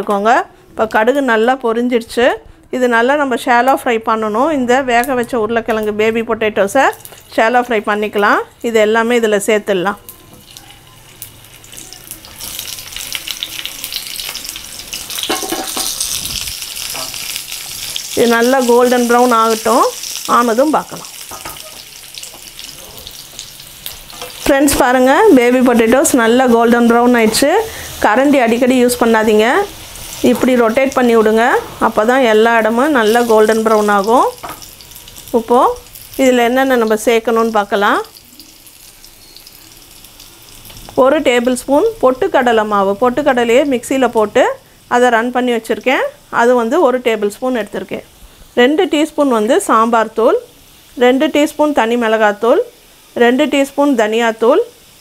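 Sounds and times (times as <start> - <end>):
potatoes sizzling in hot oil: 6.7 - 55.0.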